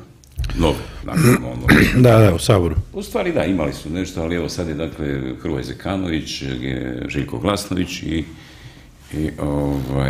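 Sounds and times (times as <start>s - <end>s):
man speaking: 0.4s - 8.4s, 9.1s - 10.0s.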